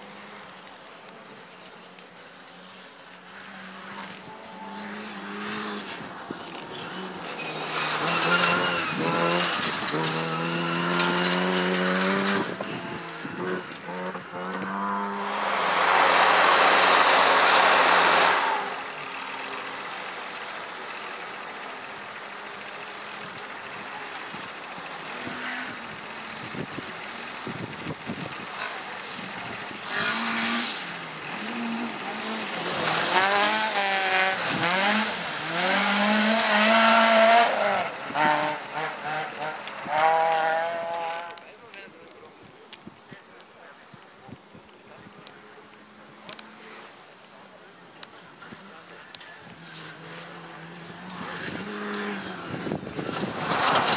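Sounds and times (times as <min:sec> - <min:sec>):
gravel and tyre noise burst: 0:00.0 - 0:53.9
rally car engines revving: 0:00.0 - 0:53.9.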